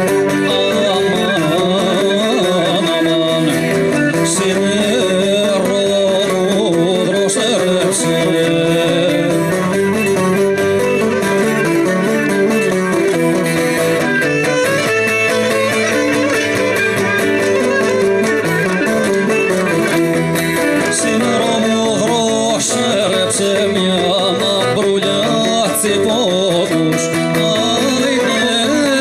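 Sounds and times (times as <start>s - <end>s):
lyra playing folk melody: 0.0s - 29.0s
strummed plucked lutes: 0.0s - 29.0s.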